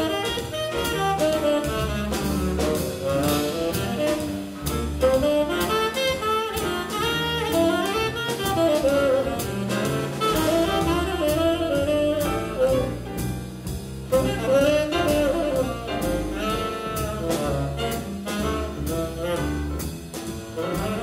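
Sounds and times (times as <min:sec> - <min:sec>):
saxophone lead line: 0:00.0 - 0:13.4, 0:14.0 - 0:21.0
drum kit cymbals: 0:00.0 - 0:21.0
walking double bass: 0:00.0 - 0:21.0.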